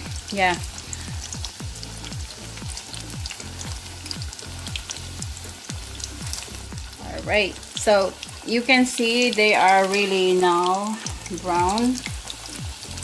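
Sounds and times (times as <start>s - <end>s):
fish deep-frying in oil: 0.0s - 13.0s.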